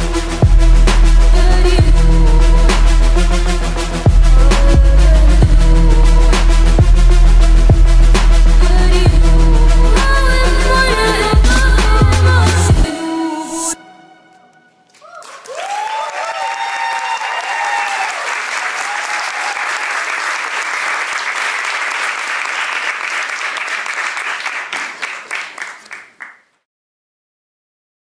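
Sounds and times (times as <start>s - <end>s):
audience applauding: 14.9s - 26.5s
shouted cheers: 15.0s - 20.3s.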